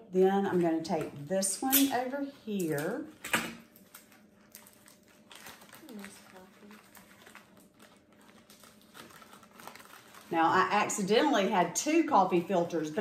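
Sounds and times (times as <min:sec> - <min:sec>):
paper filters rustling: 0:03.7 - 0:11.5.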